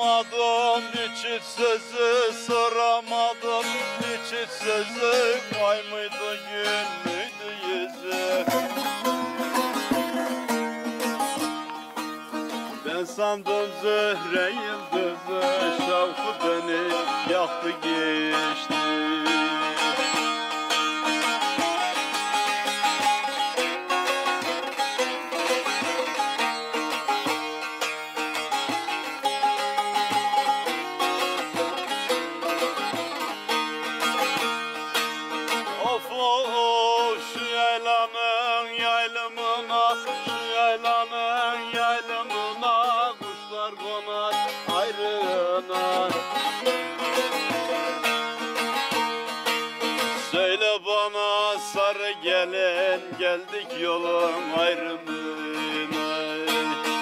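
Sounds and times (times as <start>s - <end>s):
plucked long-necked lute: 0.0s - 57.0s.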